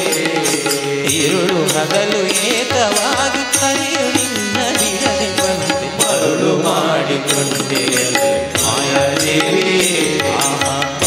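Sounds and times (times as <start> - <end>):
instrumental accompaniment with percussion: 0.0 - 11.0
man singing into a microphone: 0.0 - 11.0.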